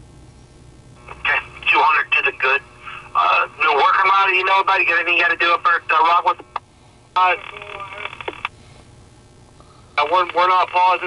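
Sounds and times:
low steady hum: 0.0 - 11.0
radio static hiss: 0.0 - 11.0.

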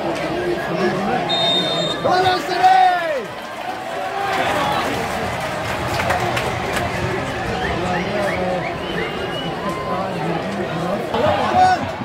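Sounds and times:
football crowd chatter and shouting: 0.0 - 12.0
referee's whistle: 1.2 - 2.1.

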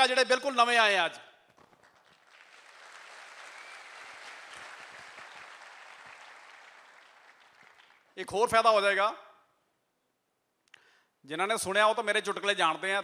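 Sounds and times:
audience applauding: 1.6 - 8.2.

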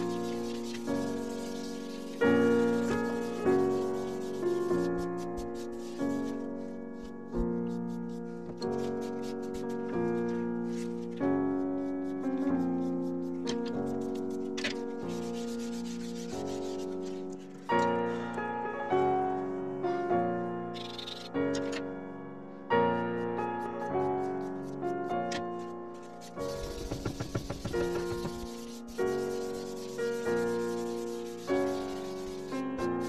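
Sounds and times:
soft rubbing on paper: 0.0 - 17.7, 23.2 - 33.0
piano music: 0.0 - 33.0.

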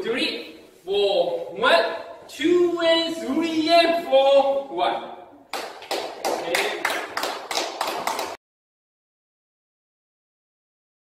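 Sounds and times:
hands clapping: 5.5 - 8.4.

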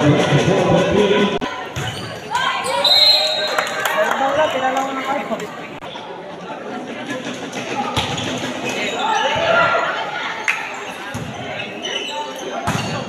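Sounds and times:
people shouting and talking: 0.0 - 13.0.

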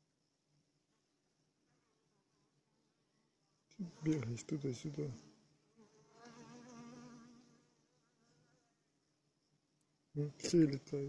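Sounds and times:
honeybee buzzing in flight: 5.8 - 7.6.

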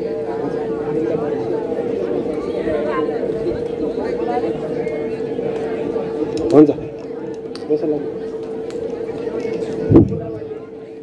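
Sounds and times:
overlapping voices chattering: 0.0 - 11.0
steady humming tone: 0.0 - 11.0.

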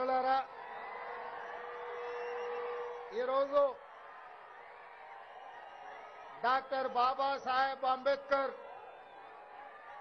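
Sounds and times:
rally crowd noise: 0.0 - 10.0.

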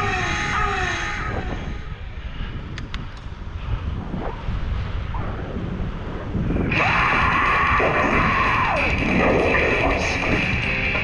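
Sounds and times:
road noise rumble: 0.0 - 11.0
wind on microphone: 0.0 - 11.0
music: 8.4 - 11.0.

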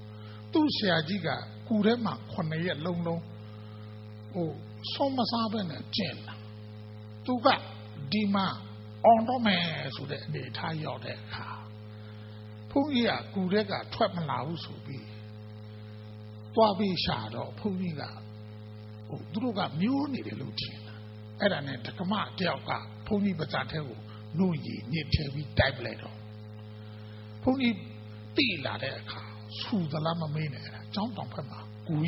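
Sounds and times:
electrical mains hum: 0.0 - 32.0
man's amplified voice: 0.5 - 3.4, 4.3 - 6.5, 7.2 - 11.7, 12.7 - 15.2, 16.5 - 18.3, 19.1 - 26.2, 27.4 - 32.0.

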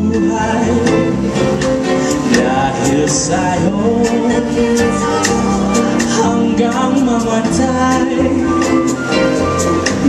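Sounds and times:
band and orchestra playing ballad: 0.0 - 10.0
drums keeping time: 0.0 - 10.0.

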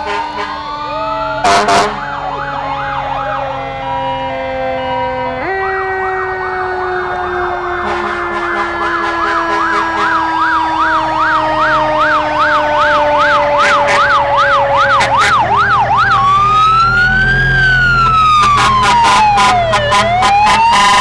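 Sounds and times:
fire truck siren yelp: 0.0 - 21.0
steady siren tone: 0.0 - 21.0.

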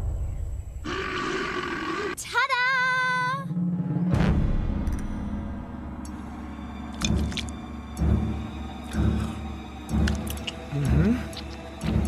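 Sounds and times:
background music: 2.4 - 12.0.

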